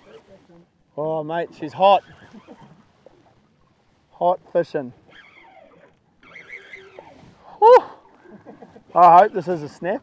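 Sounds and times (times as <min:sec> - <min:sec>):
man whooping: 0:07.5 - 0:08.0.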